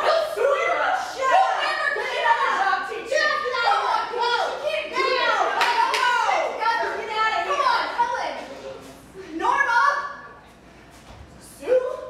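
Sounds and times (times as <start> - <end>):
young women's voices: 0.0 - 10.3, 11.4 - 12.0
sharp claps: 5.6 - 6.3.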